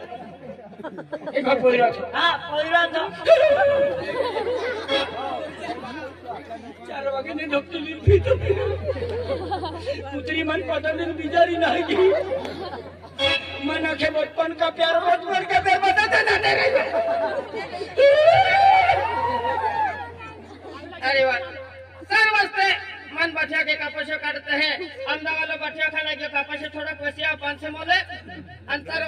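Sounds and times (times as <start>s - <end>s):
background chatter: 0.0s - 22.1s
steady low hum: 3.1s - 14.4s.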